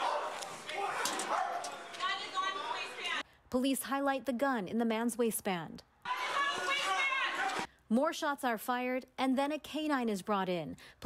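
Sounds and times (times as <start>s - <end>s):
dog barking and yelping: 0.0s - 1.8s.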